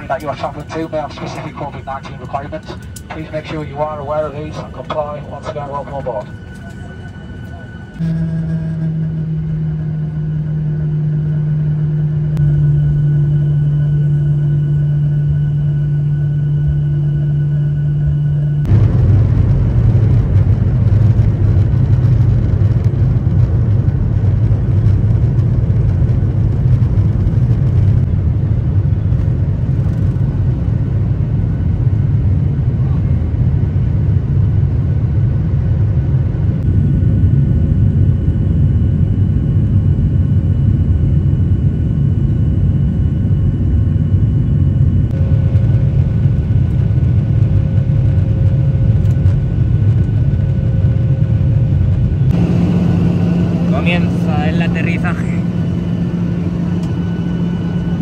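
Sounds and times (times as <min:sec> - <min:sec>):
jet engine high whine: 0:00.0 - 0:58.0
jet engines deep rumble: 0:00.0 - 0:58.0.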